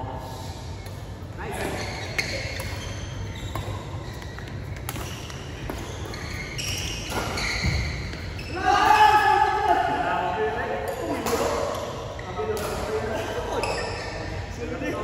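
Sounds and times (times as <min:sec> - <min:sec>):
racket hitting shuttlecock: 0:02.2 - 0:08.2.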